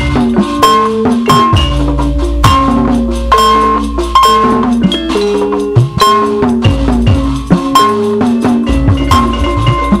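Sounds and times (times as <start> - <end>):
hand drum pitch-sliding stroke: 0.0 - 10.0
metallophones ringing melody: 0.0 - 10.0.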